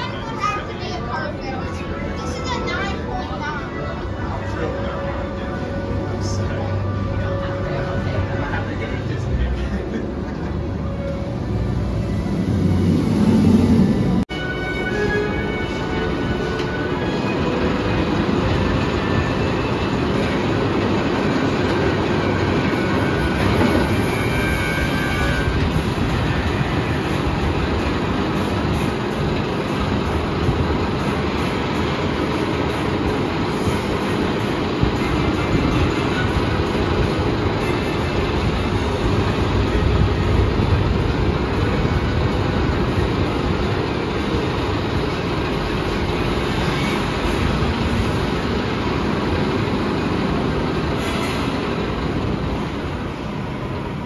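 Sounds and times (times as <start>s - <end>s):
roller coaster rumbling on track: 0.0s - 54.0s.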